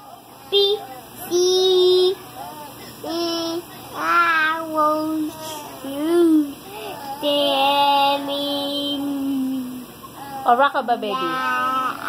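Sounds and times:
toddler singing wordlessly: 0.4 - 9.7, 11.2 - 12.0.

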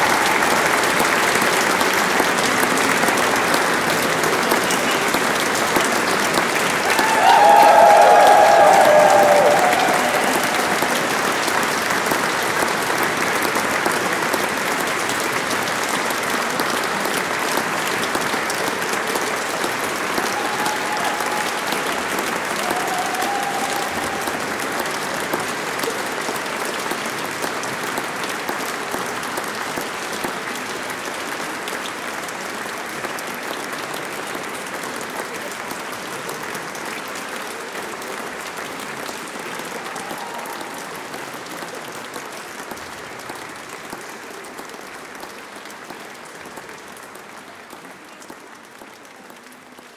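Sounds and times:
audience applauding: 0.0 - 49.9.

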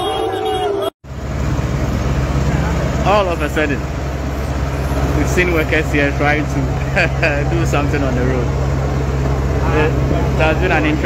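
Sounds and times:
heavy vehicle engines rumbling: 0.0 - 11.0.

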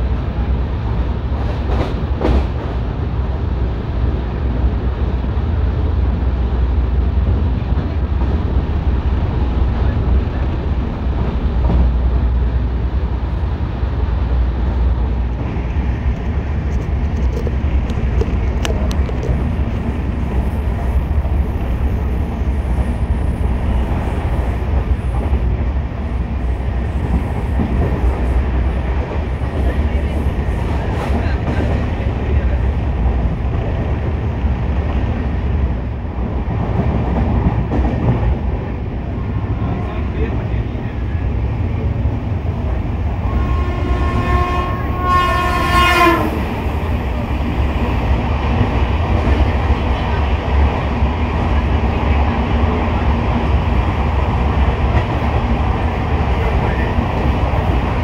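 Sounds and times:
train wheels rumbling on track: 0.0 - 58.0
train horn: 43.2 - 46.7.

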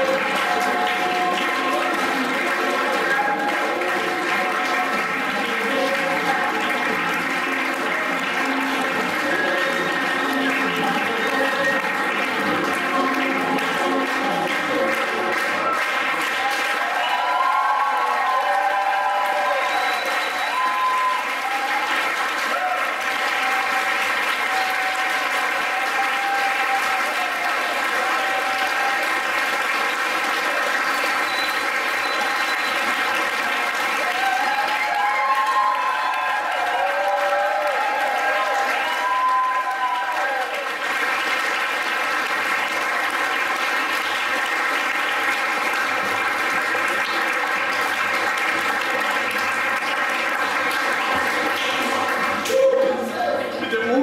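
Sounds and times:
folk song over loudspeakers: 0.0 - 15.8
audience applause: 0.0 - 54.0.

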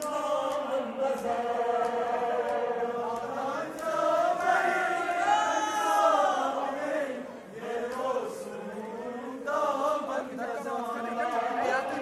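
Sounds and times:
faint sharp rhythmic beats: 0.0 - 12.0
men chanting in unison: 0.0 - 12.0.

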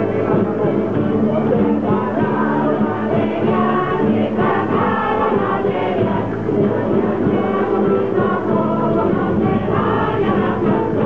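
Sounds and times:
mixed choir singing: 0.0 - 11.0
strummed and plucked guitars: 0.0 - 11.0.

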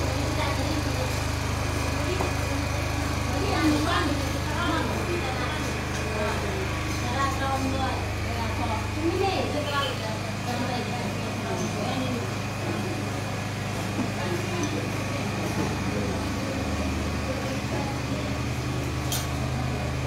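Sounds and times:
indistinct voices talking: 0.0 - 20.0.

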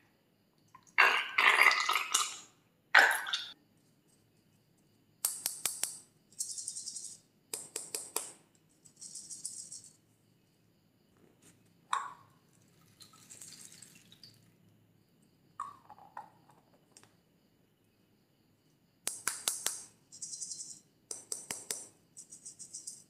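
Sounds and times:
plastic shell clicks and taps: 21.1 - 21.9.

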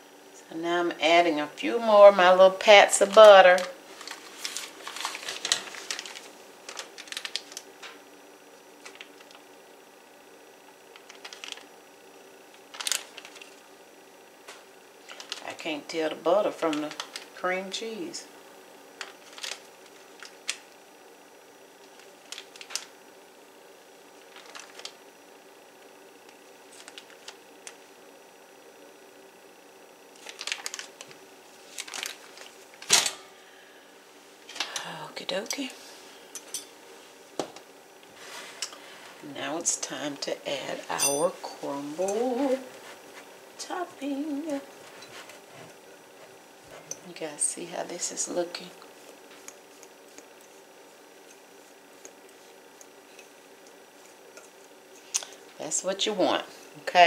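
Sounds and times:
faint steady hum: 0.0 - 57.0
paper wrapper crinkling: 3.0 - 7.7, 10.9 - 11.7, 12.6 - 13.6, 15.0 - 15.5, 16.7 - 17.4, 19.0 - 20.6, 21.8 - 22.9, 24.2 - 25.0, 26.7 - 27.8, 30.2 - 33.0.

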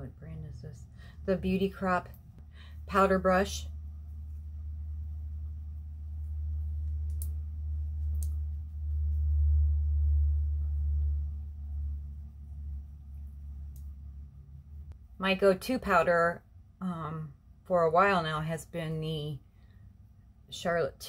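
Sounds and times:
low steady rumble: 0.0 - 21.0.

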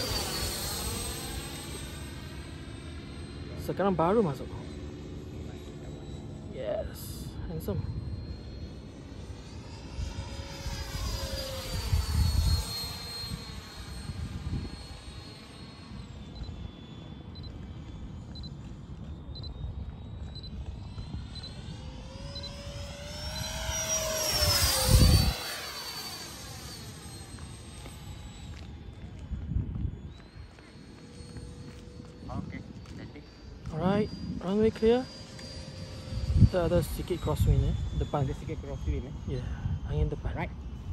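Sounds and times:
model jet fan whining: 0.0 - 40.9.

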